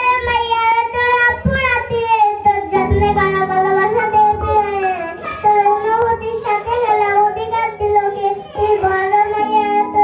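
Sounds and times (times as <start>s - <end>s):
boy singing into a microphone: 0.0s - 10.0s.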